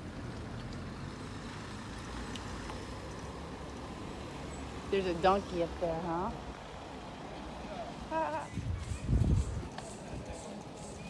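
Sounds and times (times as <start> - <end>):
road traffic rumble: 0.0 - 11.0
wind on microphone: 8.3 - 10.3.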